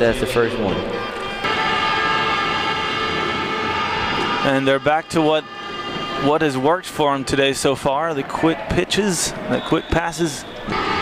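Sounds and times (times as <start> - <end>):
horn blast: 0.0 - 7.9, 9.5 - 11.0.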